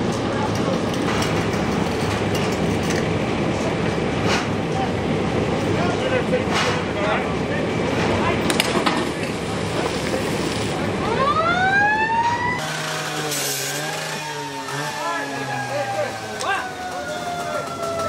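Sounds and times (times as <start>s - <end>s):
fire engine siren wailing: 10.8s - 18.0s.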